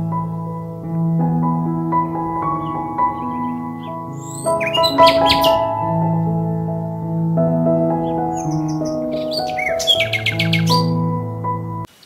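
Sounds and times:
slow ambient keyboard music: 0.0s - 11.9s
small bird chirping: 2.6s - 5.7s, 8.0s - 11.0s.

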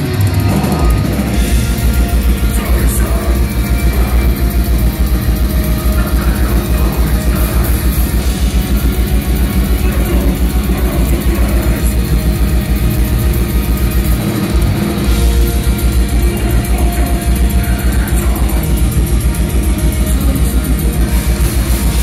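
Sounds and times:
distorted guitars: 0.0s - 22.0s.

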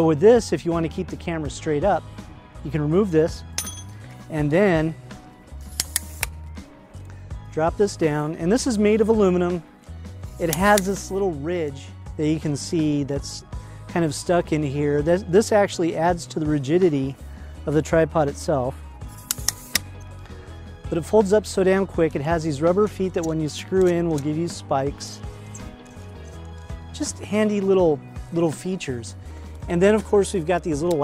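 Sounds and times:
quiet background music: 0.0s - 31.0s
tripod parts clicking: 5.6s - 6.4s, 10.3s - 11.1s, 19.1s - 20.0s, 25.5s - 26.6s.

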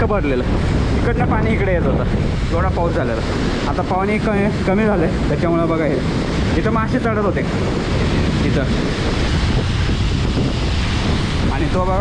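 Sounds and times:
water rushing over weir: 0.0s - 12.0s
wind buffeting microphone: 0.0s - 12.0s.

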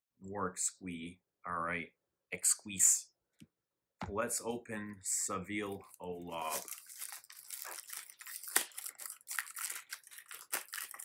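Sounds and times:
plastic wrapping crinkling: 5.6s - 11.0s.

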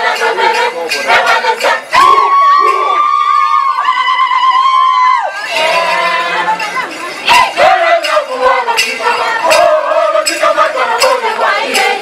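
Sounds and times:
group chant with rhythmic beat: 0.0s - 3.0s, 5.3s - 12.0s
voices shouting: 0.2s - 8.9s
long high-pitched cry: 1.9s - 5.5s.

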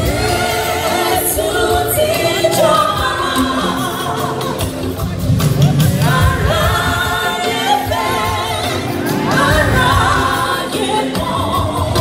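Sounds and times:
choir singing gospel song: 0.0s - 5.0s, 5.8s - 12.0s.

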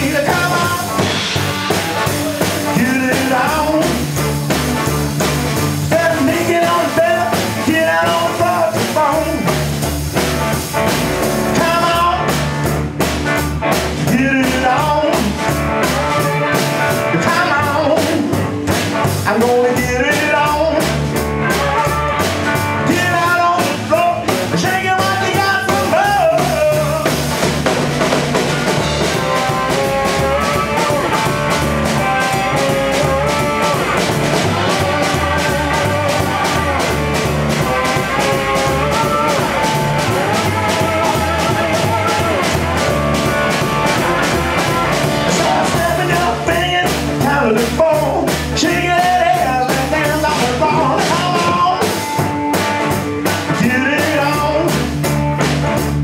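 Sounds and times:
double bass line: 0.0s - 56.0s
electric guitar melody: 0.0s - 56.0s
steady drum beat: 0.0s - 56.0s.

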